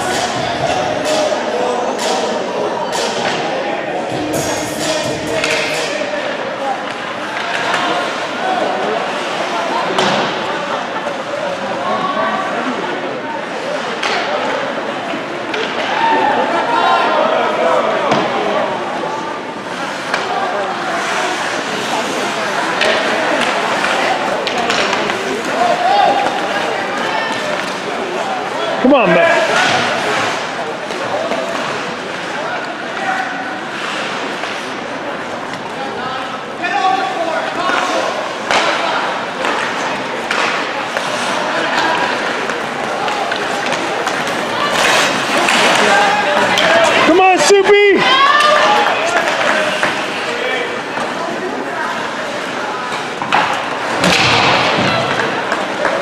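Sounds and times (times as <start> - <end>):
spectators chattering: 0.0 - 56.0.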